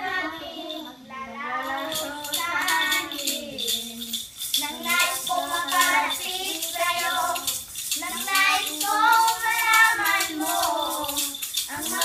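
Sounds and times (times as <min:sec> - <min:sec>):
girls singing together: 0:00.0 - 0:12.0
hand rattle shaken: 0:01.6 - 0:12.0.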